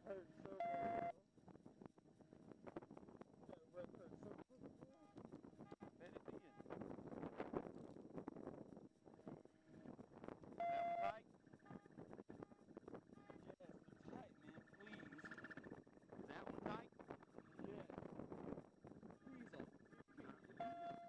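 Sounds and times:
people talking: 0:00.0 - 0:01.0, 0:03.5 - 0:05.2, 0:06.0 - 0:06.5, 0:13.3 - 0:15.4, 0:16.2 - 0:16.9, 0:17.6 - 0:17.9, 0:19.2 - 0:21.0
high steady tone: 0:00.5 - 0:01.2, 0:10.5 - 0:21.0
loud electronic beep: 0:19.2 - 0:21.0.

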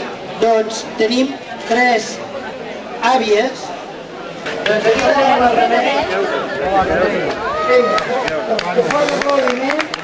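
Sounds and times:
crowd of voices chattering: 0:00.0 - 0:10.0.

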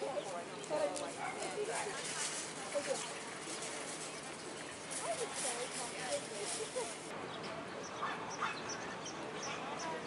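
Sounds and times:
indistinct voices of passersby: 0:00.0 - 0:10.0.

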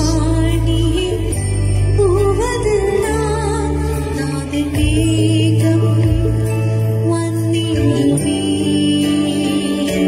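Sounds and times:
instrumental accompaniment: 0:00.0 - 0:10.0
woman singing gospel song: 0:02.0 - 0:10.0.

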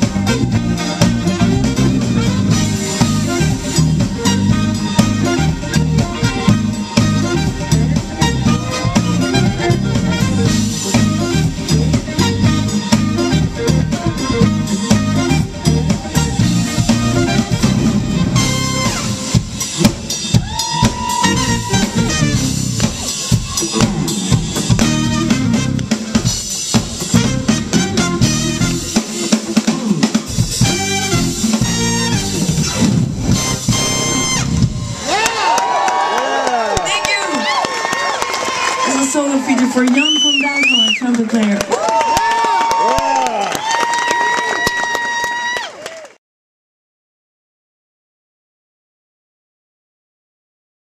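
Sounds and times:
saxophone and trumpet: 0:00.0 - 0:35.8
funk-jazz band playing: 0:00.0 - 0:42.1
crowd cheering and whistling: 0:20.1 - 0:24.8, 0:33.8 - 0:46.2.

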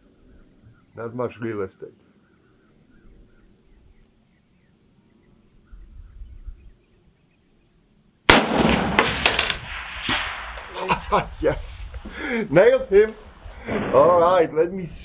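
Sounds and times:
rifle shot with rolling report: 0:08.3 - 0:10.8.

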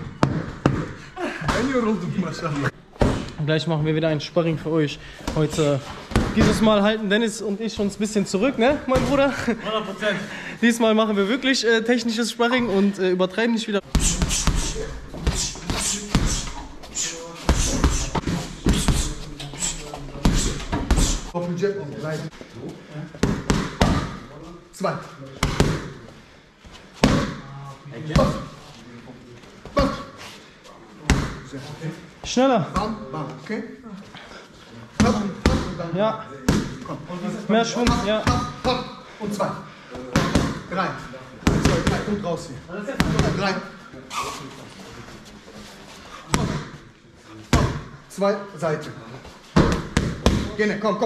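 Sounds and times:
boxing gloves hitting mitts: 0:00.0 - 0:01.7, 0:13.8 - 0:16.8, 0:17.4 - 0:21.3, 0:23.2 - 0:24.3, 0:27.0 - 0:27.5, 0:35.0 - 0:35.8, 0:37.8 - 0:38.9, 0:40.1 - 0:40.7, 0:41.4 - 0:42.2, 0:49.5 - 0:50.6.

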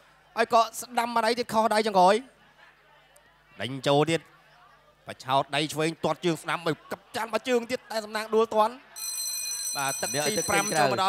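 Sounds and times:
man commentating: 0:09.8 - 0:11.0.

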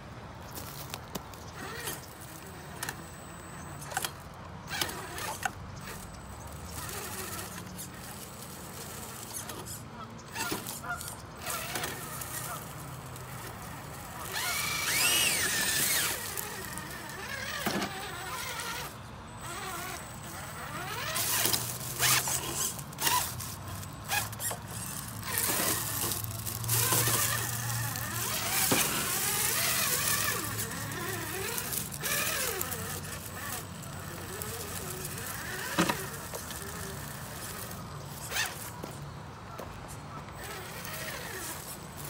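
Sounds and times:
tyres crunching through leaves: 0:00.3 - 0:42.0
toy car motor whining: 0:00.5 - 0:42.0.

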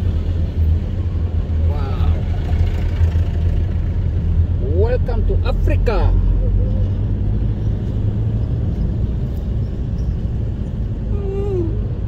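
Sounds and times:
engine and road drone: 0:00.0 - 0:12.0.

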